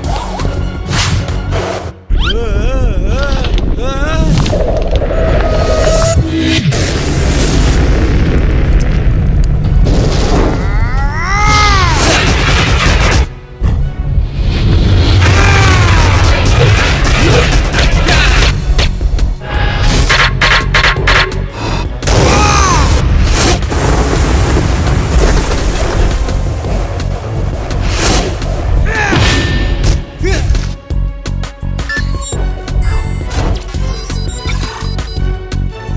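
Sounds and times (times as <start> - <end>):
music: 0.0 - 3.8, 10.5 - 35.9
deep rumble: 2.4 - 11.2
cartoon explosion rumbling boom: 6.7 - 10.9.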